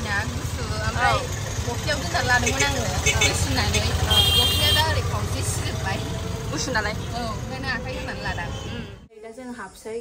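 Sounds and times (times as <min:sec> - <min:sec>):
auto-rickshaw engine rumbling: 0:00.0 - 0:09.1.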